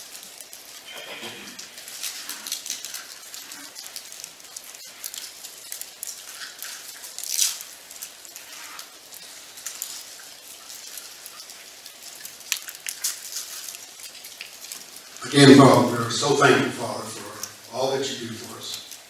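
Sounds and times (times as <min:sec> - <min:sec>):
bread crackling and rustling: 0:00.0 - 0:19.0.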